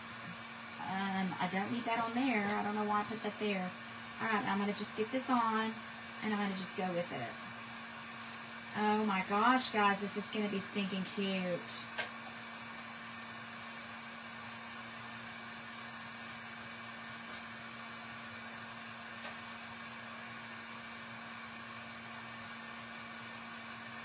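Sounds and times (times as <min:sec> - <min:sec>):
room hum and hiss: 0:00.0 - 0:24.0.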